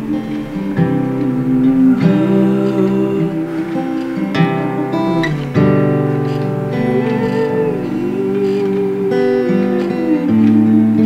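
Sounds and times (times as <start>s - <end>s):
acoustic guitar chords: 0.0s - 11.0s
long wordless sung note: 0.0s - 11.0s.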